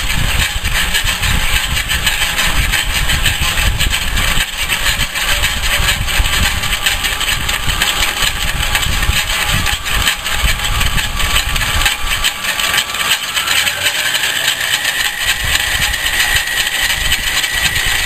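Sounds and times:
metal lathe cutting: 0:00.0 - 0:18.0
thin high whine: 0:00.0 - 0:18.0.

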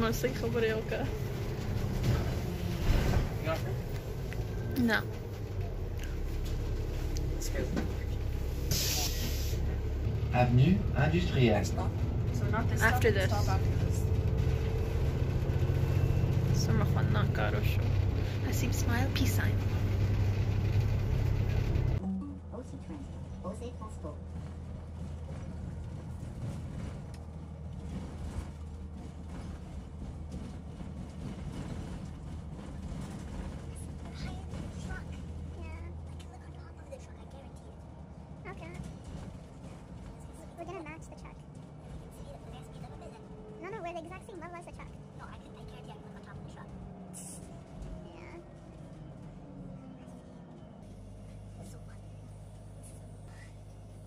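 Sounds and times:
bus interior rumble: 0:00.0 - 0:54.0.

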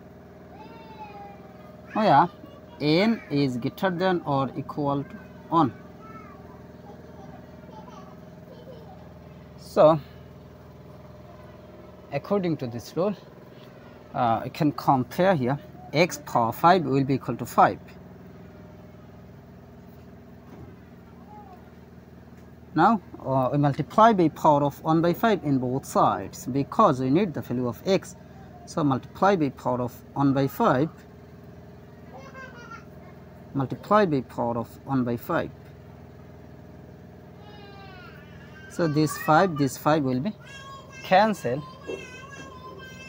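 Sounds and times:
machine humming: 0:00.0 - 0:43.0.

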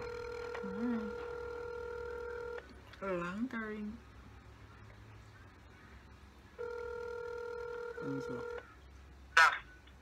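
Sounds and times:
phone ringback tone: 0:00.0 - 0:02.6, 0:06.6 - 0:08.6.

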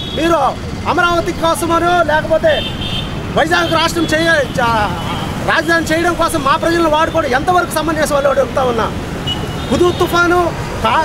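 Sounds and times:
man speaking: 0:00.0 - 0:02.7, 0:03.3 - 0:09.0, 0:09.7 - 0:11.0.

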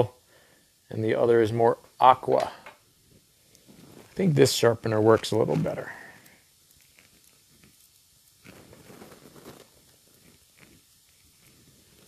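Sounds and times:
crayon scraping in pencil sharpener: 0:08.4 - 0:12.0.

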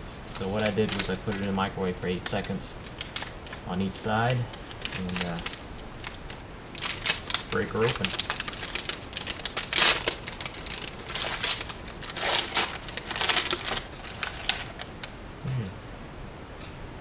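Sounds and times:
wrapper tearing and crinkling: 0:00.4 - 0:15.1.

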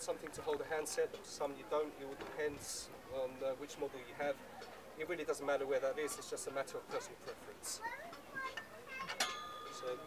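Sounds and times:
metal clink: 0:09.0 - 0:10.0.

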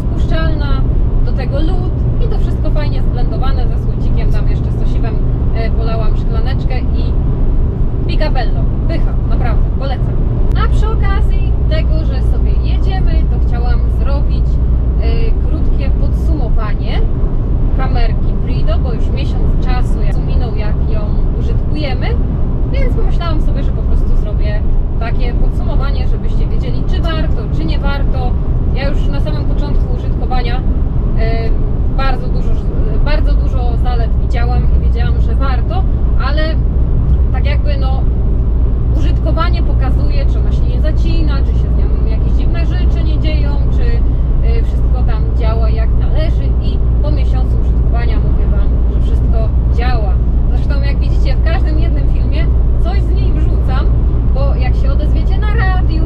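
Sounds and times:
woman talking: 0:00.0 - 0:07.2, 0:08.0 - 0:38.1, 0:38.9 - 0:56.0
truck engine and tyres rumbling: 0:00.0 - 0:56.0.

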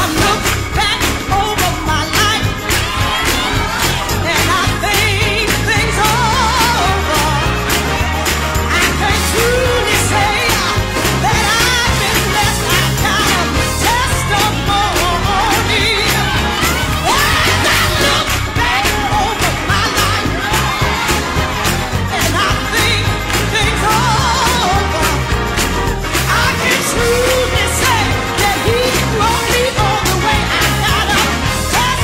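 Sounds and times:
drum beat: 0:00.0 - 0:32.0
gospel singing: 0:00.0 - 0:32.0
steady bass: 0:00.0 - 0:32.0
solo singer with vibrato: 0:08.7 - 0:20.5.

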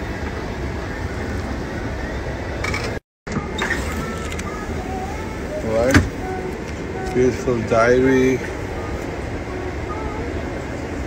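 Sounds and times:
airliner cabin rumble and hiss: 0:00.0 - 0:11.0.

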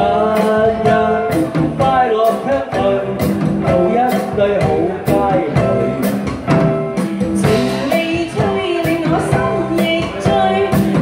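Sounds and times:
man singing: 0:00.0 - 0:06.5, 0:07.3 - 0:08.1
live band with electric guitar: 0:00.0 - 0:11.0
woman singing: 0:07.4 - 0:11.0.

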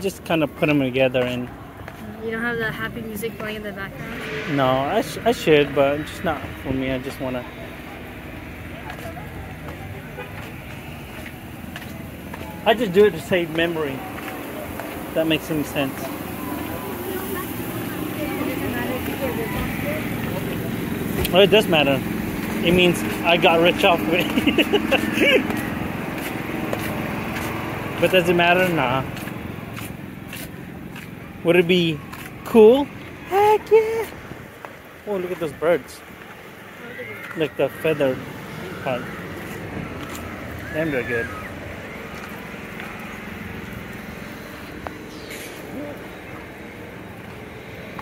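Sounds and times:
engine humming: 0:00.0 - 0:48.0
faint voices: 0:00.0 - 0:48.0
street noise: 0:00.0 - 0:48.0.

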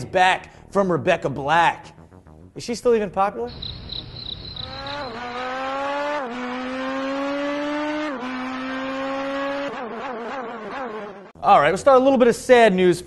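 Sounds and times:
car engine accelerating: 0:03.5 - 0:11.4.

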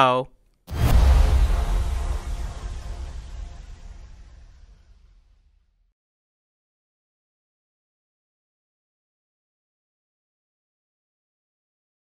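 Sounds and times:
deep boom with rushing tail: 0:00.7 - 0:05.9.

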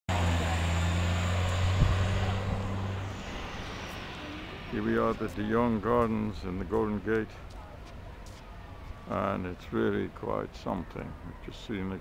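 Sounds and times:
vehicle engine running: 0:00.1 - 0:06.6
road noise: 0:00.1 - 0:12.0.

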